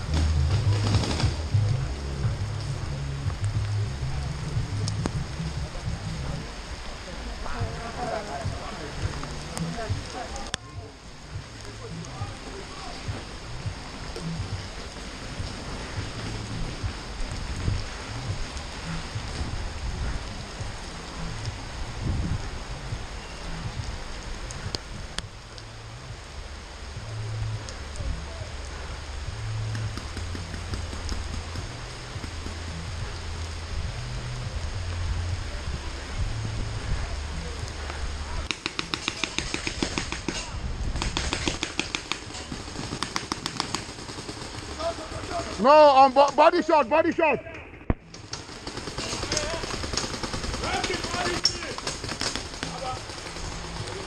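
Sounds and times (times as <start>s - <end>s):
low microphone rumble: 0.0s - 38.5s, 40.2s - 41.2s
rain hissing on helmet: 0.0s - 54.0s
paintball marker firing shots: 38.5s - 42.3s.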